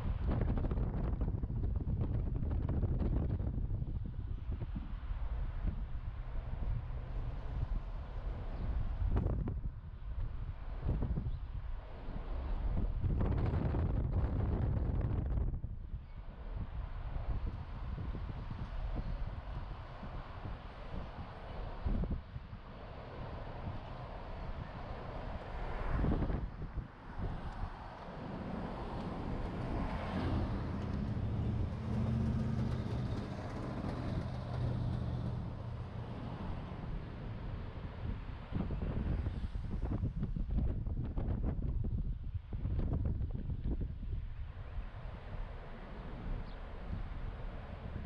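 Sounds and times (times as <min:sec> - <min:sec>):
low engine hum: 0:00.0 - 0:48.0
road and traffic noise: 0:00.0 - 0:48.0
wind buffeting microphone: 0:00.0 - 0:48.0.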